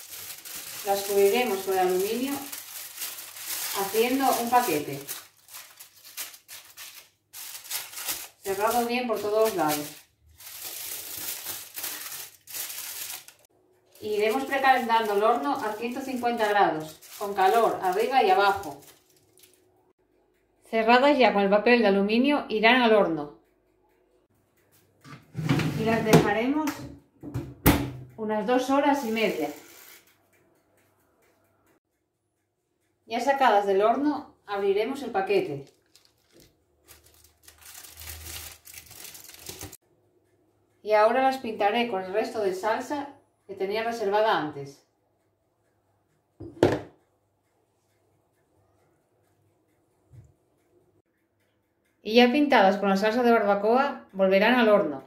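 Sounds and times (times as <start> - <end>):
aluminium foil crinkling: 0.0 - 19.7, 29.0 - 30.1, 35.0 - 39.8.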